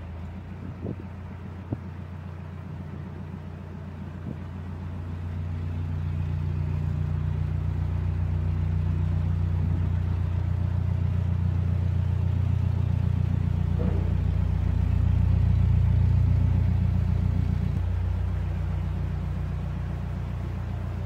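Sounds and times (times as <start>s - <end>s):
diesel boat engine throbbing: 0.0s - 21.0s.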